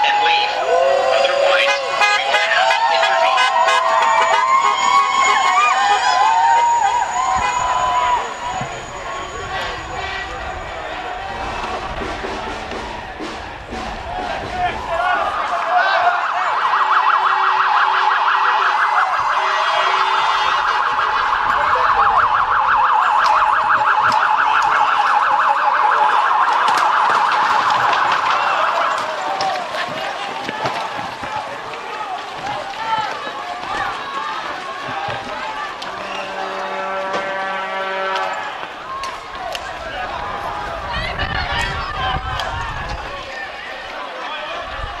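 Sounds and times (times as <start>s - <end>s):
police siren warbling yelp: 0.0s - 9.7s, 15.6s - 29.2s
crowd noise: 0.0s - 45.0s
people shouting: 0.0s - 45.0s.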